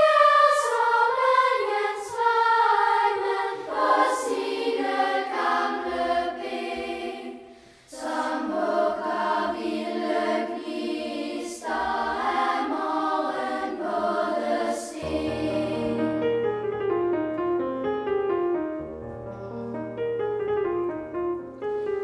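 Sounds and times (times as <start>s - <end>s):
children's choir singing: 0.0s - 16.2s.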